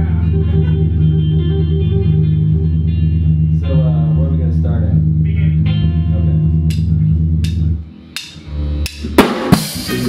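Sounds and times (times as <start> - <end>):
bass guitar low notes: 0.0 - 10.0
electric guitar strummed chords: 0.0 - 10.0.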